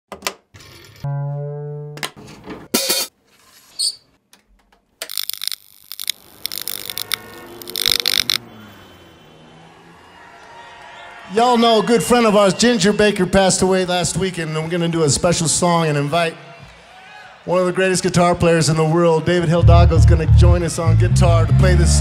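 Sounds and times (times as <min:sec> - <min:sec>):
held guitar note: 0:01.0 - 0:02.1.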